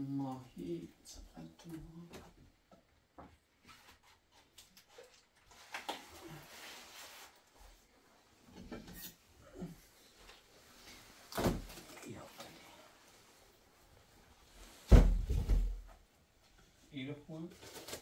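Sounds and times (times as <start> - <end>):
loud thump: 14.9 - 15.8.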